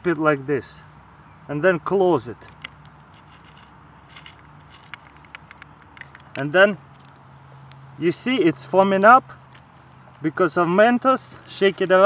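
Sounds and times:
plastic cap clicking and scraping: 4.3s - 6.4s.

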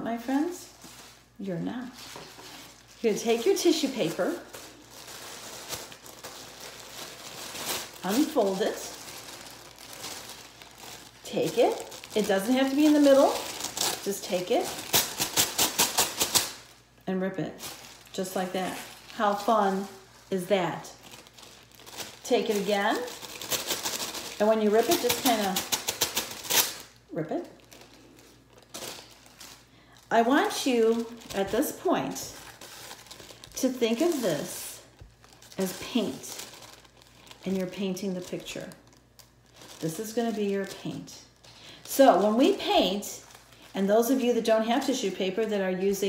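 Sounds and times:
tissue paper rustling: 0.2s - 16.9s, 17.5s - 46.0s.

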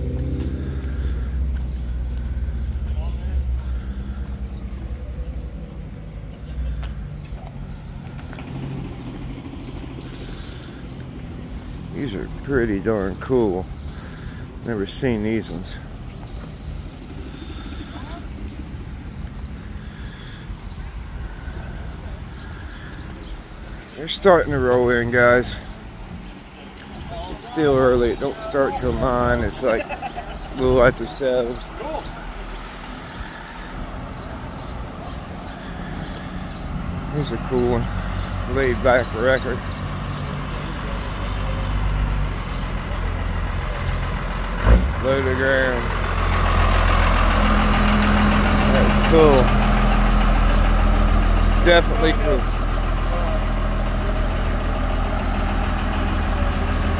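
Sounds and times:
engines running steadily: 0.0s - 56.9s
faint voices: 21.2s - 36.3s.

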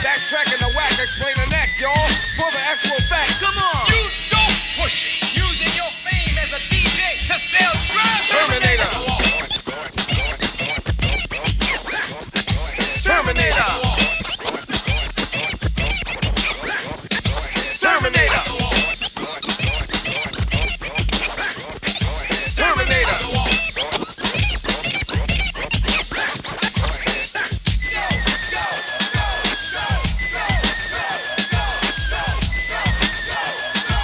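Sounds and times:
deep repeating hip hop beat: 0.0s - 34.0s
turntable record scratches: 0.0s - 34.0s.

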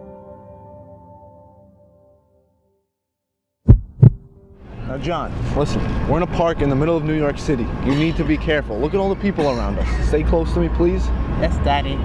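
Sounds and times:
heartbeat thumps: 3.7s - 4.3s
outdoor city background noise: 4.0s - 12.0s.

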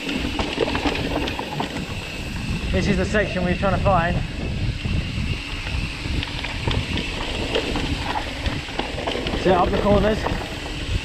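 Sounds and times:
bike clicks and rattles: 0.0s - 11.0s
tyres rumbling on dirt: 0.0s - 11.0s
wind buffeting microphone: 0.0s - 11.0s.

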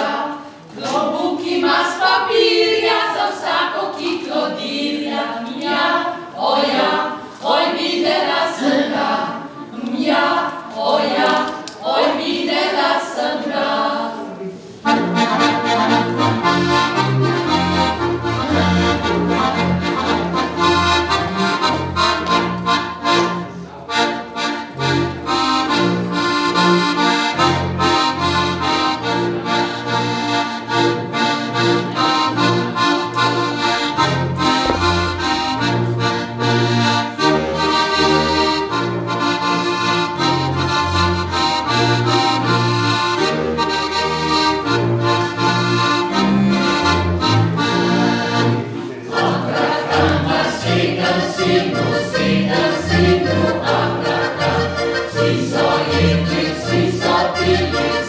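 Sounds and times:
women singing unaccompanied: 0.0s - 14.2s
accordions playing folk dance tune: 0.0s - 58.0s.

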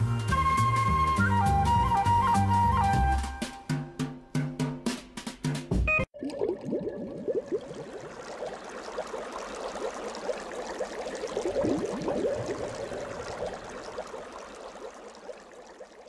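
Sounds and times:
water bubbling and gurgling: 6.1s - 16.0s.

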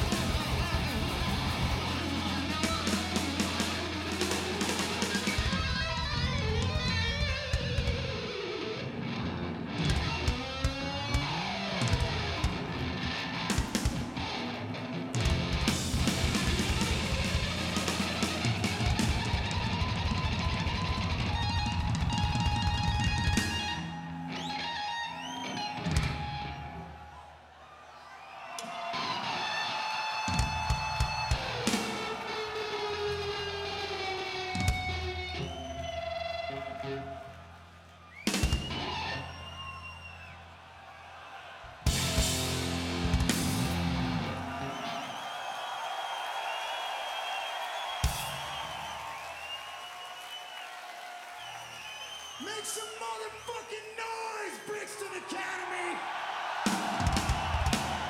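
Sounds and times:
bass: 0.0s - 8.3s, 15.1s - 23.8s, 41.8s - 44.6s
electric guitar lines: 0.0s - 27.0s, 29.0s - 37.4s, 38.3s - 39.6s, 41.9s - 45.1s
drum kit fast hits: 15.3s - 23.7s, 30.3s - 32.2s, 41.8s - 44.3s, 56.6s - 58.0s.

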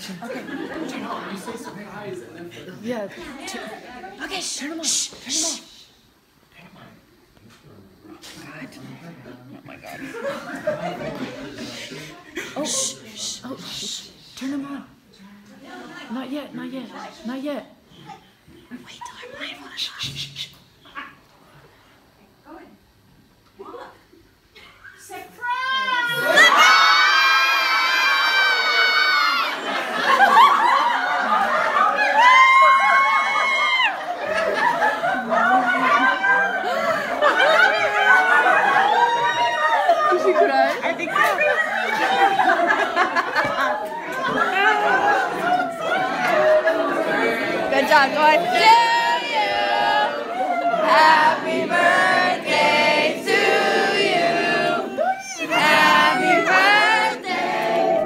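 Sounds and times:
crowd yelling and cheering: 25.5s - 40.6s, 41.2s - 58.0s
group of people singing in unison: 45.8s - 58.0s.

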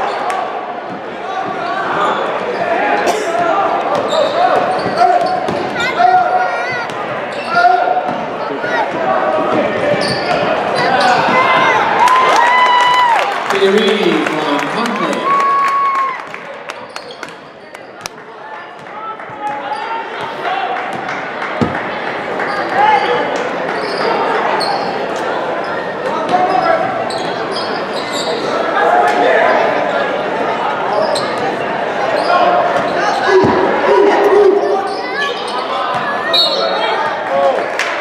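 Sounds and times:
voices shouting and talking: 0.0s - 21.3s, 22.0s - 38.0s
basketball bouncing on court: 3.9s - 5.8s.

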